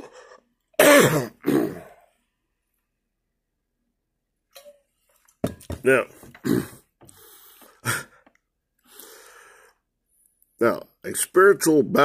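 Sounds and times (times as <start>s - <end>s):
man coughing: 0.8s - 2.0s, 6.4s - 6.8s
rasping breath: 8.8s - 9.8s.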